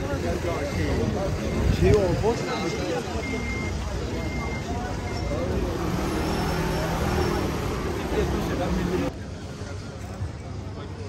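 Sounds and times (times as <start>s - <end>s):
vehicle engine humming: 0.0s - 10.1s
people talking: 0.0s - 11.0s.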